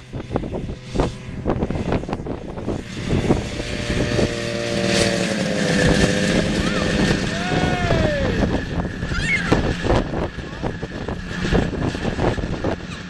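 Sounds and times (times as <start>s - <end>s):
snowmobile engine running: 0.0s - 13.0s.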